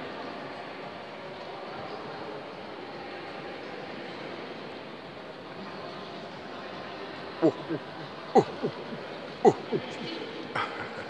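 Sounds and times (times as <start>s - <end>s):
faint echoing voices: 5.8s - 11.0s.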